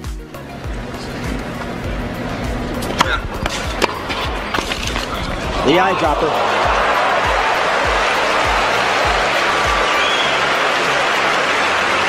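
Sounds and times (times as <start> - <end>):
tennis ball hit by racket: 2.8 - 5.6.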